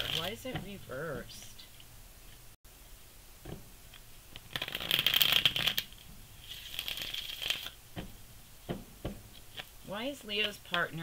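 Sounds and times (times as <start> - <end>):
cards being riffle shuffled: 4.3 - 7.8.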